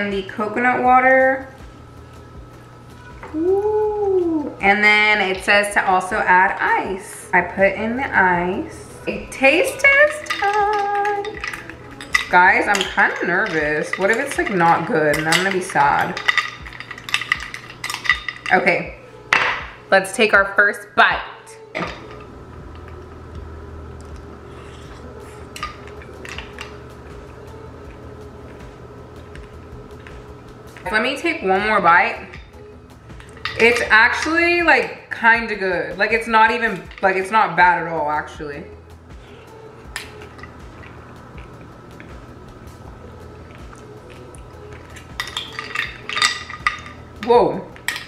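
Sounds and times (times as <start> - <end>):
steady low hum: 0.0 - 48.0
spoon clinking in glass dish: 10.1 - 18.6, 44.8 - 47.0.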